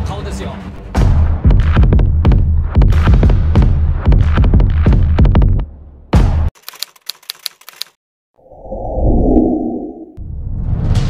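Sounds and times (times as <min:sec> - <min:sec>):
typewriter keystroke clicks: 0:06.6 - 0:08.0
low rushing whoosh: 0:08.4 - 0:10.3.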